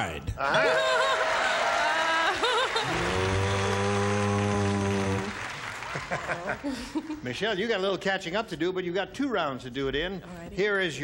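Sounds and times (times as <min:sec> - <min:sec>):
audience applauding: 0:00.6 - 0:07.2.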